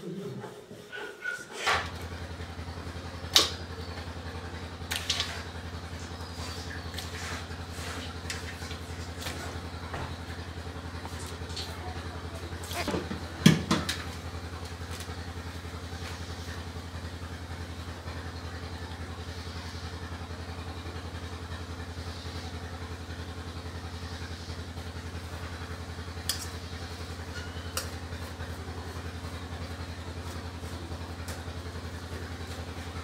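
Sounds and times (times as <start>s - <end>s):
small engine idling: 1.6s - 33.0s.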